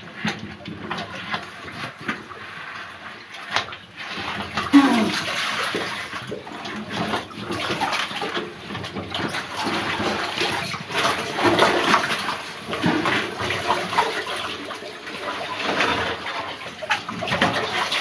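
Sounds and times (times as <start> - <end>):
water splashing and sloshing: 0.0 - 18.0.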